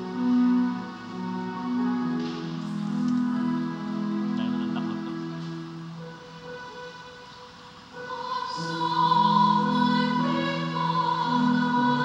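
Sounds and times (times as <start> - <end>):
sustained church chords: 0.0 - 12.0
singing: 7.9 - 12.0.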